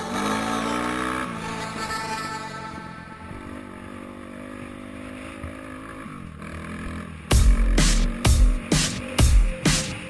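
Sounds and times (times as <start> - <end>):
off-road vehicle engine running: 0.0 - 10.0.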